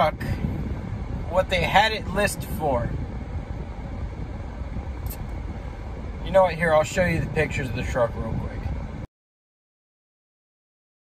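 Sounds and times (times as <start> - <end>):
car cabin rumble: 0.0 - 9.0.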